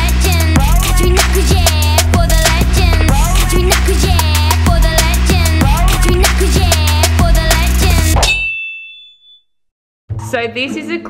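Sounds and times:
music with steady beat and bass: 0.0s - 8.2s
high ringing tone: 8.2s - 9.7s.

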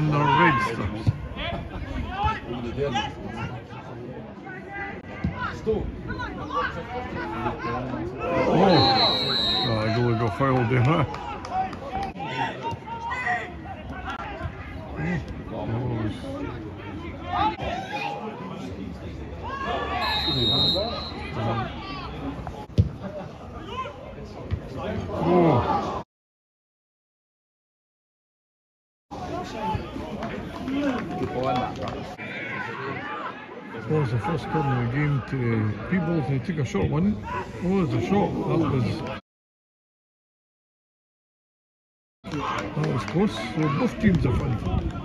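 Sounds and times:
background chatter: 0.0s - 26.0s, 29.1s - 39.2s
people shouting and calling out: 0.0s - 26.0s, 29.1s - 39.2s, 42.3s - 45.0s.

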